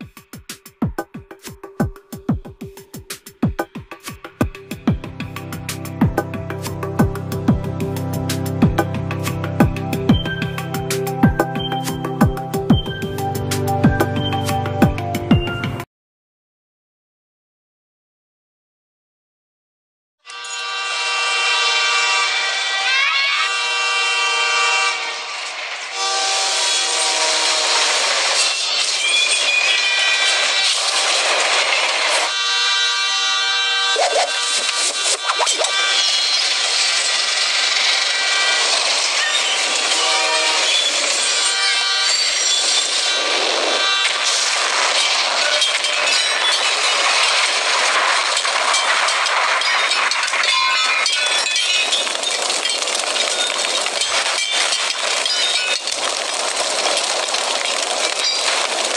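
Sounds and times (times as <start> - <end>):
train running: 0.0 - 15.8, 20.3 - 58.9
film music: 0.0 - 15.9
locomotive horn blasts: 20.2 - 28.8, 32.2 - 36.4, 38.3 - 44.5.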